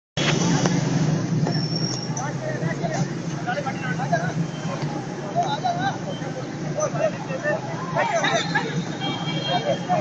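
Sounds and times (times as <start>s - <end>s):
distant traffic rumble: 0.2s - 10.0s
faint voices: 0.2s - 10.0s.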